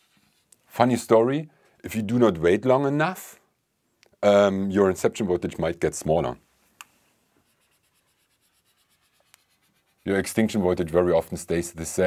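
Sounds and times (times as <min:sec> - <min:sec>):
marker rubbing on whiteboard: 0:07.4 - 0:12.0.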